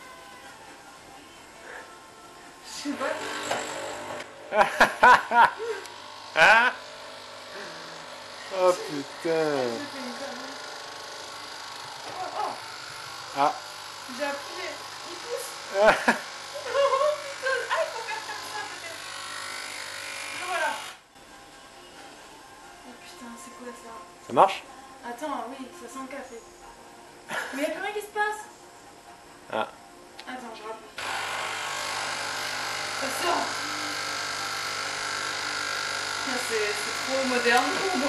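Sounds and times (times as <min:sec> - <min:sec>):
coffee machine pump buzzing: 0:02.9 - 0:21.0, 0:31.0 - 0:38.0.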